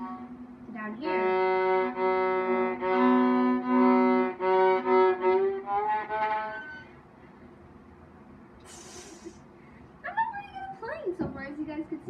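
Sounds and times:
viola bowed notes: 0.0 - 7.0
brief hiss: 8.6 - 9.8.

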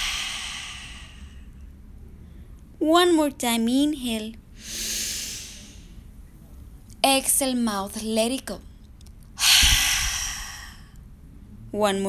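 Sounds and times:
woman inhaling through nose: 0.0 - 1.5, 4.6 - 5.8, 9.4 - 10.9.

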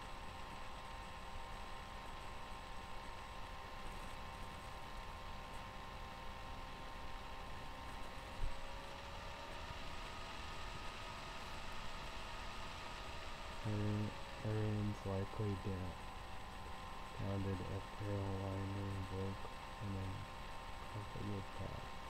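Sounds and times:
faint constant tones: 0.0 - 22.0
low room hum: 0.0 - 22.0
man speaking in low voice: 13.6 - 16.0, 17.1 - 20.3, 20.9 - 21.9.

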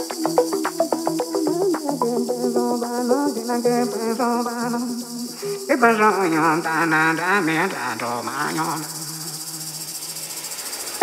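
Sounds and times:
high-pitched chirring pulse: 0.0 - 7.7.

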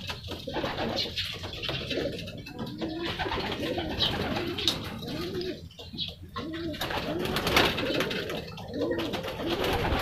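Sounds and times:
pigeon cooing: 0.0 - 10.0.

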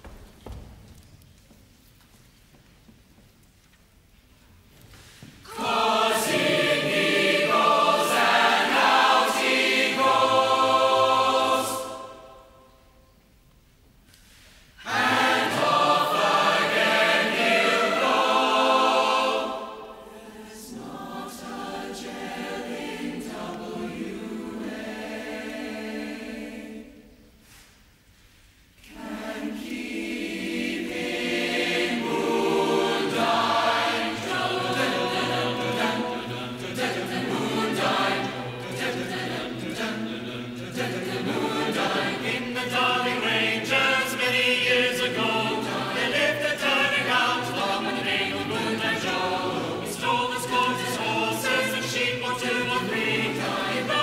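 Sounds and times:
large mixed choir singing: 5.4 - 12.9, 14.8 - 27.6, 28.8 - 54.0.

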